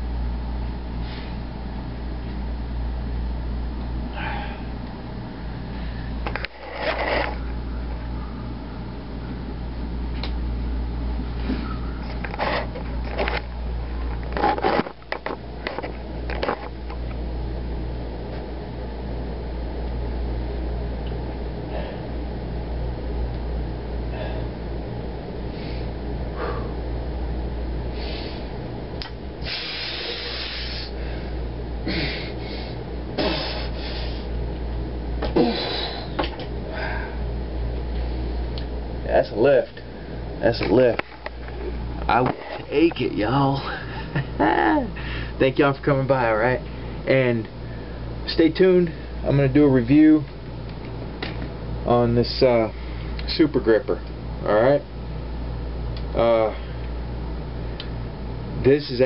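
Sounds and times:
steady low hum: 0.0 - 59.0
man hissing exhalations through teeth: 29.4 - 31.0, 31.9 - 34.3.

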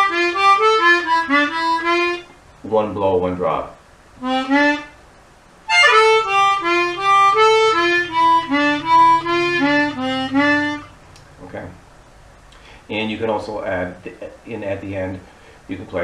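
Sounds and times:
blues harmonica: 0.0 - 2.4, 4.2 - 5.0, 5.7 - 11.0.

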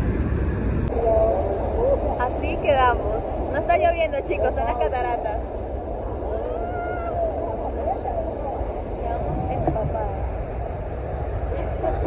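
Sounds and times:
wind buffeting microphone: 0.0 - 12.0
people talking: 7.5 - 10.3.

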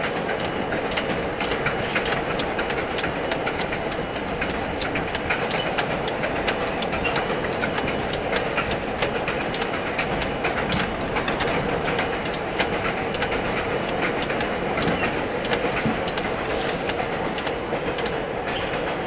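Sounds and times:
train wheels and motors rumbling: 0.0 - 19.0
wheels clattering over rail joints: 0.0 - 19.0.

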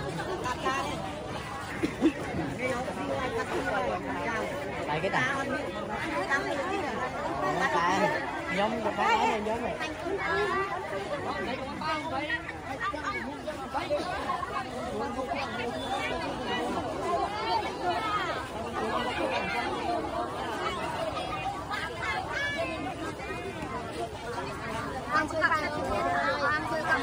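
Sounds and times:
crowd chatter: 0.0 - 27.0.

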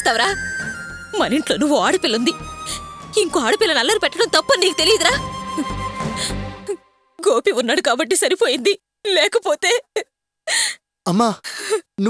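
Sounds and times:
woman sobbing: 5.0 - 6.8, 9.6 - 10.8.

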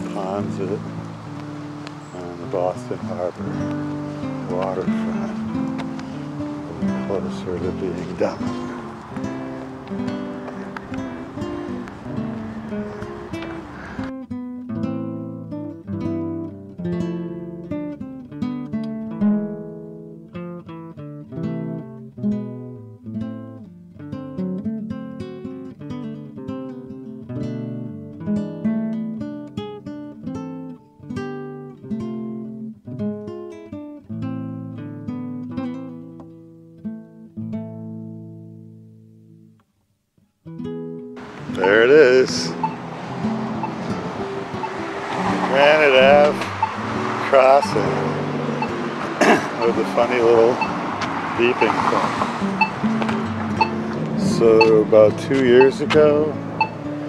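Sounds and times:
outdoor background noise: 0.0 - 14.3, 41.0 - 57.0
picked acoustic guitar: 0.0 - 57.0.

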